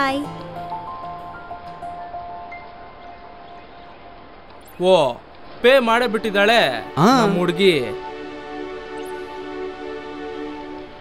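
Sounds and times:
soft chime-like music: 6.5 - 8.0.

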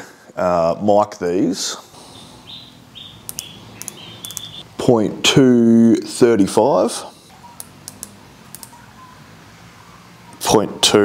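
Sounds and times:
light paired clicks: 3.2 - 4.6, 7.6 - 8.8.

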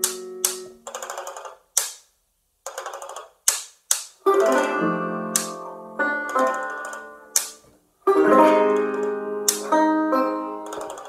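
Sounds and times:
banjo muted strumming: 4.2 - 11.0.

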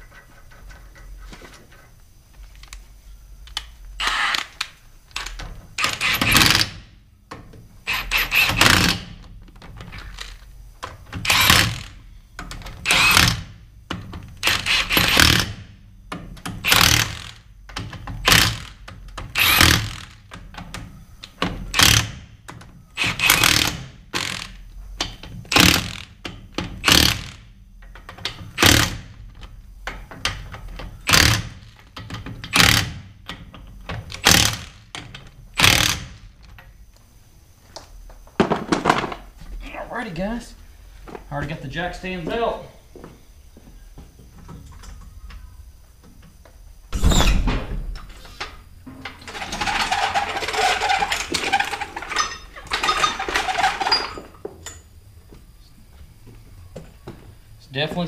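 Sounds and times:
impact wrench bursts: 4.0 - 6.8, 7.8 - 9.2, 11.2 - 12.0, 12.8 - 13.6, 14.4 - 15.7, 16.5 - 17.5, 18.2 - 20.3, 21.7 - 22.3, 23.0 - 24.6, 25.5 - 27.5, 28.6 - 29.1, 31.0 - 31.8, 32.4 - 33.1, 34.1 - 36.2, 49.2 - 54.2.

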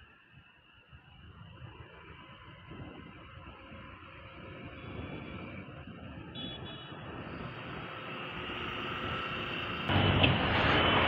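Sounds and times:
road traffic rumble: 1.2 - 11.0.

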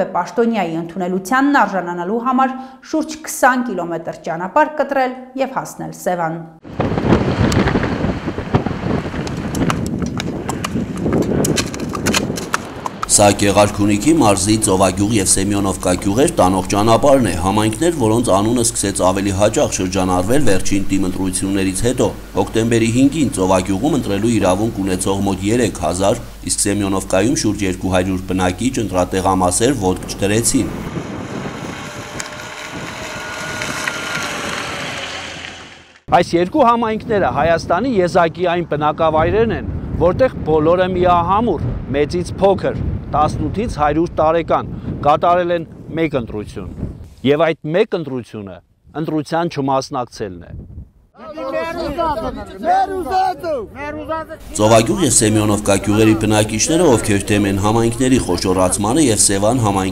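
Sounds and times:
steady rushing noise: 6.6 - 36.1, 54.4 - 59.9
horse hooves clip-clopping on road: 7.8 - 15.0
faint high whine: 13.0 - 36.0, 54.4 - 59.9
outdoor hiss and rumble: 13.0 - 36.1, 54.4 - 59.9.

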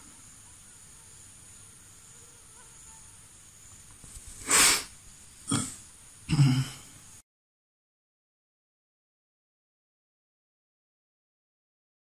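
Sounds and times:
steady high-pitched hiss: 0.0 - 7.2.

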